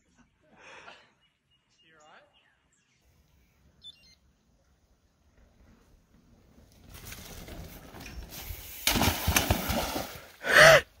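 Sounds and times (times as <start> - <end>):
bike splashing into water: 8.8 - 10.4.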